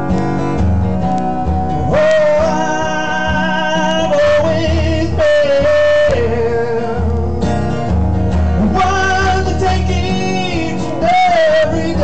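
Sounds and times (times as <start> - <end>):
strummed acoustic guitar: 0.0 - 12.0
man singing high held notes: 1.9 - 7.4.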